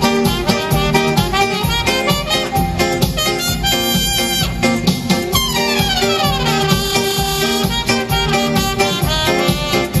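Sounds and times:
keyboard accompaniment with beat: 0.0s - 10.0s
trumpet melody: 0.0s - 10.0s.

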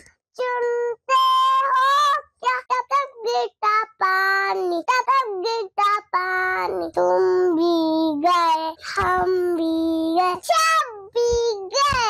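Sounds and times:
young child singing: 0.0s - 12.0s.

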